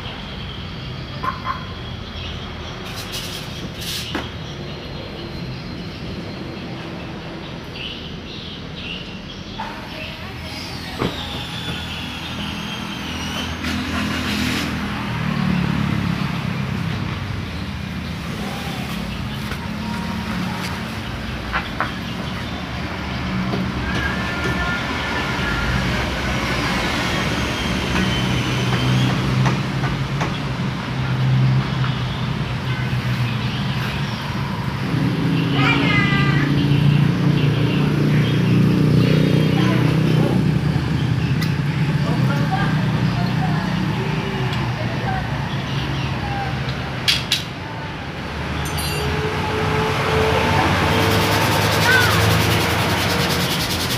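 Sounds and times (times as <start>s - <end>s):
voices in background: 37.7s - 48.2s.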